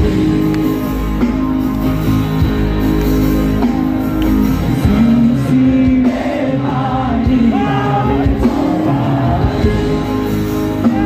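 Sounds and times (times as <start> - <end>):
live band through pa system: 0.0 - 11.0
person singing: 4.7 - 11.0.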